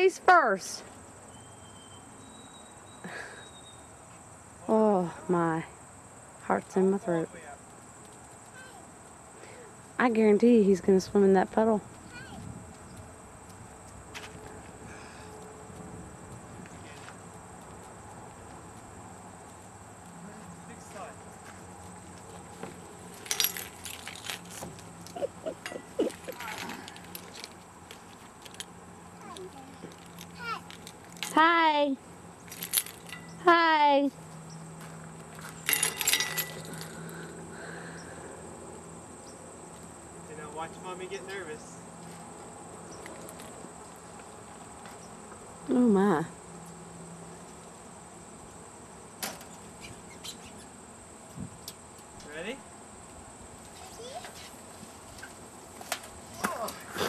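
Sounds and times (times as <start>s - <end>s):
toddler calling out: 8.5s - 8.9s, 12.0s - 12.4s
metallic jangle: 23.1s - 24.6s, 25.4s - 27.5s, 32.5s - 33.4s, 35.4s - 37.1s.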